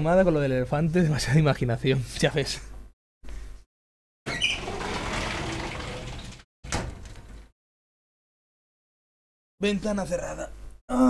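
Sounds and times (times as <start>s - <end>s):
sliding window shutting: 4.3s - 7.4s.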